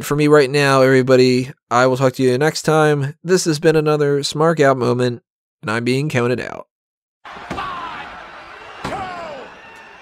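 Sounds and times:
slam-like hit: 8.8 - 9.4.

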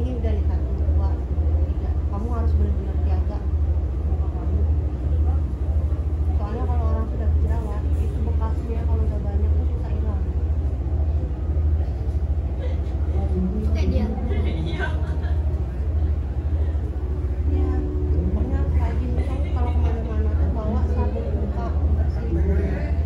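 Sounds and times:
loud pulsing low hum: 0.0 - 23.0.

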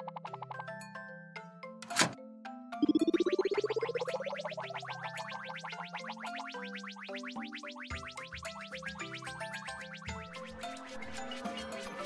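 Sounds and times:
light music with mallet notes: 0.0 - 3.8
machine buzzing whir rising in pitch: 7.9 - 12.0.

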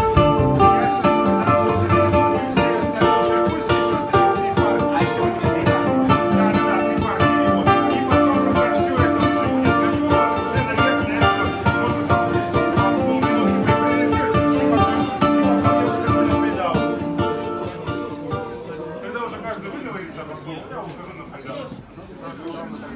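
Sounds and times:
jazz on ukulele: 0.0 - 18.8.

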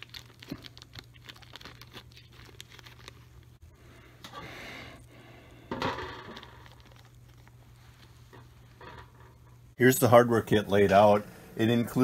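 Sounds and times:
plastic bag crinkling: 0.0 - 3.6, 6.2 - 8.3
low steady hum: 0.0 - 12.0.

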